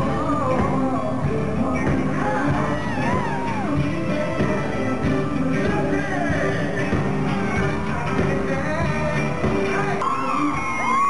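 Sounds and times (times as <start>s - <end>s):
loud live pop concert music: 0.0s - 11.0s.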